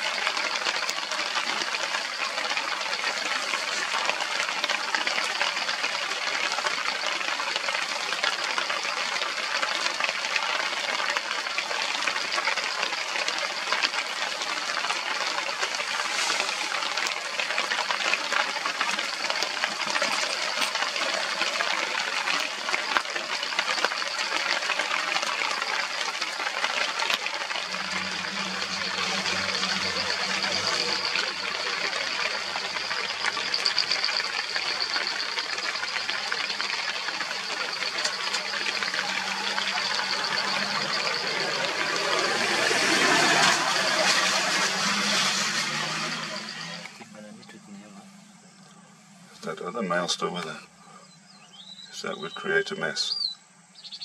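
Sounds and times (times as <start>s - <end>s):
steady rain: 0.0s - 50.5s
low hum: 25.2s - 49.6s.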